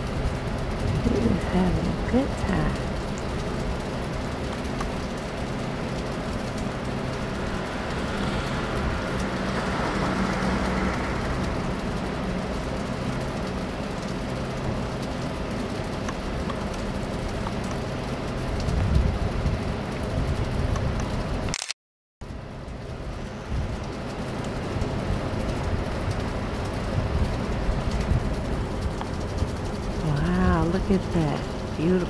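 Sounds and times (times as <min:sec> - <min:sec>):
road traffic hum: 0:00.0 - 0:21.5, 0:22.2 - 0:32.0
vehicle passing: 0:05.5 - 0:13.9.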